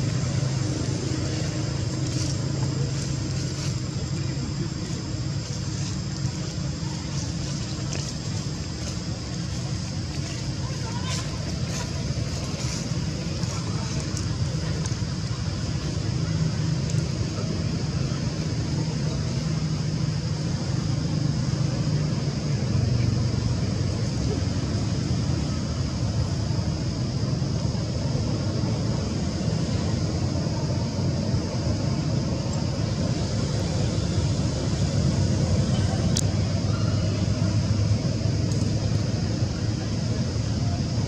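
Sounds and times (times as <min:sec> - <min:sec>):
continuous low rumble: 0:00.0 - 0:41.0
steady high hiss: 0:00.0 - 0:41.0.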